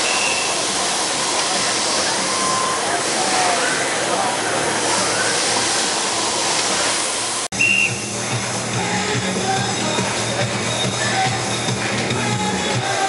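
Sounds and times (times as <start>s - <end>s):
hiss of crowd and machinery: 0.0s - 13.0s.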